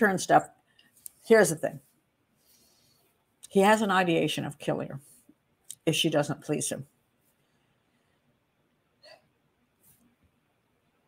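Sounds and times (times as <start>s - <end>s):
soft intake of breath: 2.3s - 3.2s.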